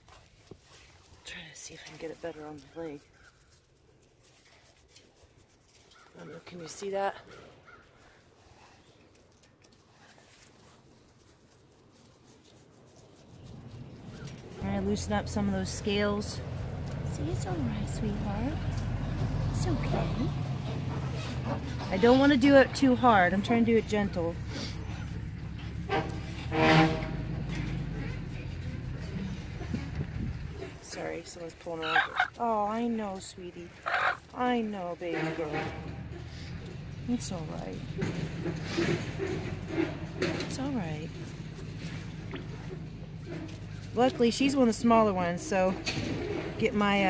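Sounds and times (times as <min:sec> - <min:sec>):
toothbrush scrubbing scaly legs: 0:00.6 - 0:06.5, 0:09.6 - 0:26.7, 0:27.3 - 0:35.6
vehicle engine rumbling: 0:12.8 - 0:47.0.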